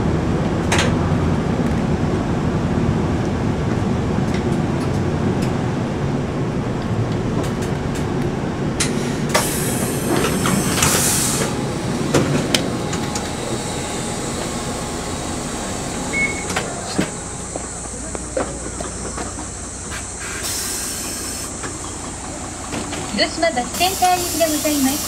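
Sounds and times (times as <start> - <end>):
bus engine rumbling: 0.0 - 25.0
compressed-air hiss: 9.0 - 11.6, 19.9 - 21.5, 23.8 - 25.0.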